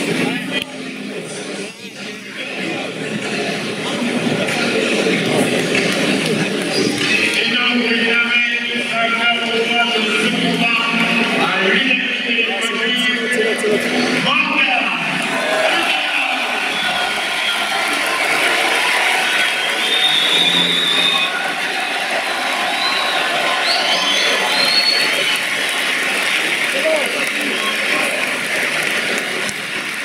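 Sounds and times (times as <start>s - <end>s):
crowd shouting and cheering: 0.0s - 30.0s.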